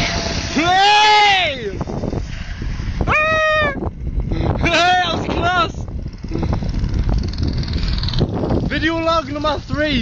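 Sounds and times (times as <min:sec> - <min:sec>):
low engine rumble: 0:00.0 - 0:10.0
person shouting: 0:00.6 - 0:01.7, 0:03.0 - 0:03.8.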